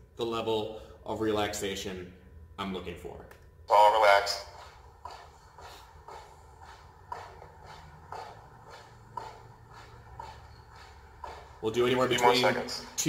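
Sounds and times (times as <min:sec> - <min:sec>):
feet striking the floor: 0:03.9 - 0:13.0.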